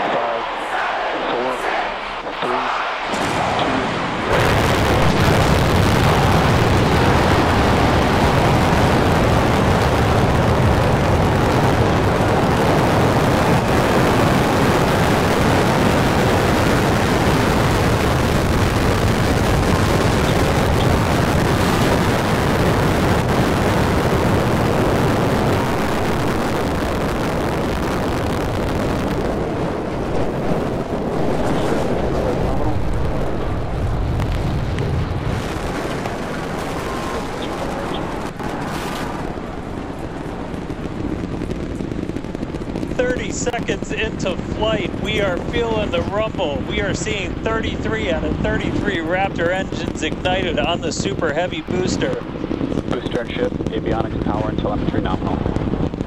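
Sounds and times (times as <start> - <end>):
rocket engines rumbling: 0.0 - 56.0.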